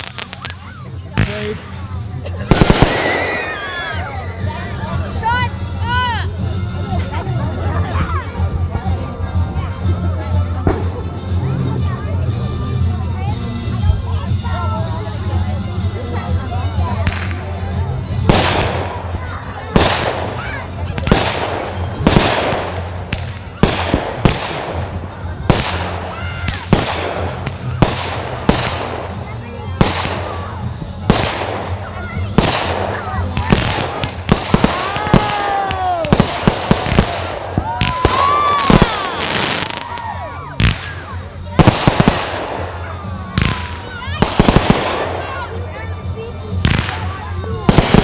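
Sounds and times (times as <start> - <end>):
fireworks whistles: 0.0 - 0.8, 2.5 - 4.4
fireworks bangs: 0.0 - 4.1, 18.2 - 45.6, 46.5 - 48.0
fireworks crackling: 0.0 - 7.4, 10.4 - 48.0.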